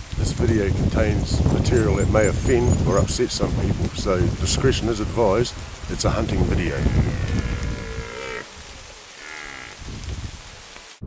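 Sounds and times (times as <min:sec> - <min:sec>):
red deer stag roaring: 0:06.4 - 0:09.9.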